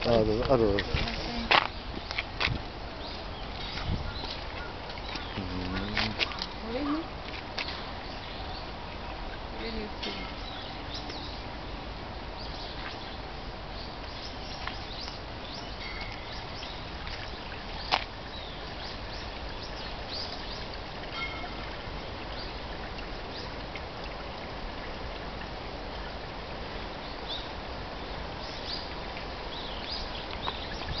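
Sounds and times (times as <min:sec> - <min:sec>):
small birds chirping: 0:00.8 - 0:11.8, 0:12.4 - 0:23.6, 0:26.7 - 0:31.0.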